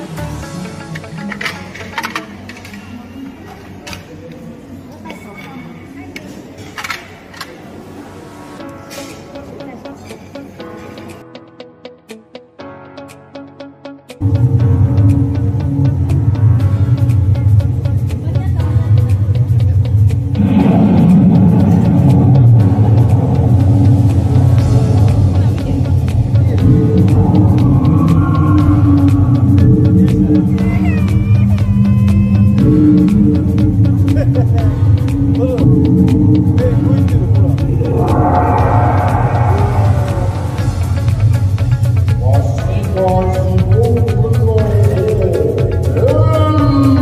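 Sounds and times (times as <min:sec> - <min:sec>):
murmur of diners' voices: 0:00.0 - 0:11.2, 0:17.8 - 0:47.0
deep rumbling sound effect: 0:14.2 - 0:42.2
dramatic show music over loudspeakers: 0:14.2 - 0:47.0.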